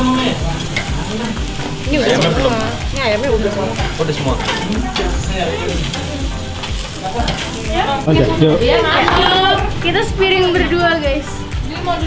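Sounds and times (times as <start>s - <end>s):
chicken sizzling on a grill: 0.0s - 10.4s.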